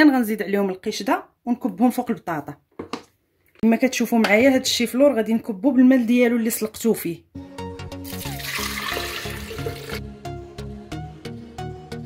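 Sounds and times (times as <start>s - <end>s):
water pouring into blender jar: 8.1s - 10.0s
background music with steady beat: 9.1s - 12.0s.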